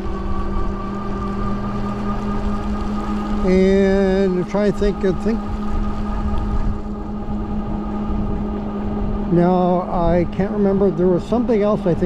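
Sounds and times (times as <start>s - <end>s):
electric motor whining: 0.0s - 12.0s
wind rumble: 0.0s - 12.0s.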